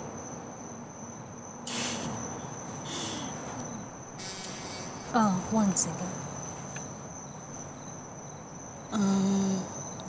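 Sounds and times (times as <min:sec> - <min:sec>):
crickets chirring: 0:00.0 - 0:10.0
short bursts of hiss: 0:01.7 - 0:02.2, 0:04.2 - 0:04.9.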